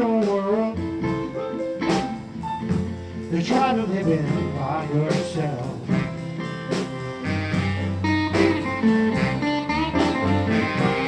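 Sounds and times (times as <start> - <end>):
live blues band playing: 0.0 - 11.0
electric guitar line: 4.4 - 11.0.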